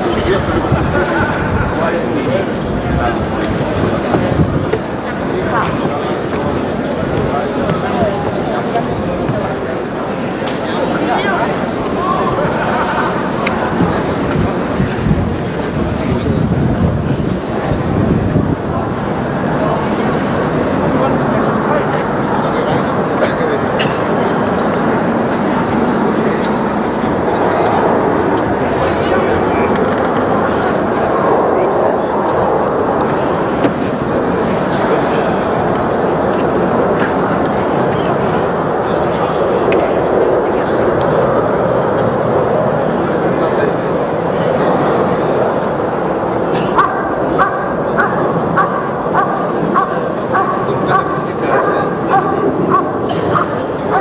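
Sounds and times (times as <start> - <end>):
stadium crowd murmur: 0.0 - 54.0.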